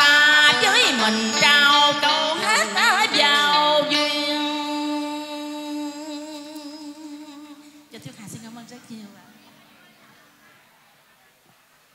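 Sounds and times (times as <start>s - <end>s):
woman singing a long note: 0.0s - 8.0s.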